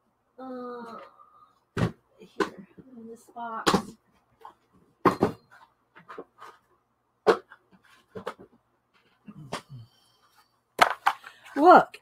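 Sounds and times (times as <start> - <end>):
plastic box clicking and knocking: 10.8 - 11.3.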